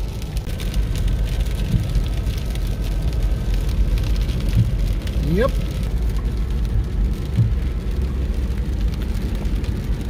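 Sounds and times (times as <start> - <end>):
car driving on wet road: 0.0 - 10.0
rain ticking on windshield: 0.0 - 10.0.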